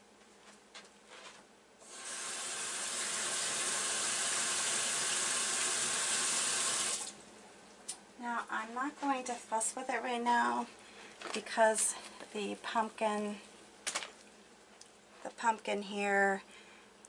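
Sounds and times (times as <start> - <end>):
water running from a tap: 1.9 - 7.2.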